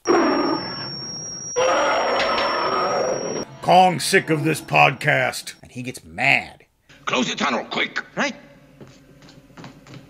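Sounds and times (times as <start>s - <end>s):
thin high whine: 0.0s - 7.1s.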